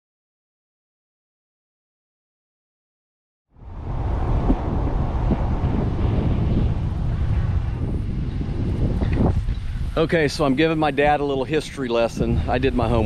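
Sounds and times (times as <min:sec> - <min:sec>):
wind buffeting microphone: 0:03.6 - 0:13.0.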